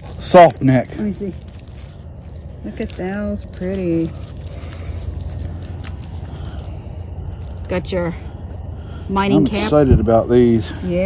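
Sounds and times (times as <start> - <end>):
garlic skins crackling: 0.0 - 8.7
steady low hum: 0.0 - 11.0.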